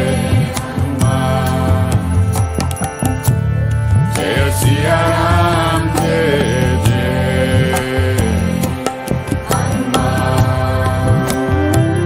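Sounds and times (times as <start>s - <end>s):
percussion strokes: 0.0s - 12.0s
sustained drone tones: 0.0s - 12.0s.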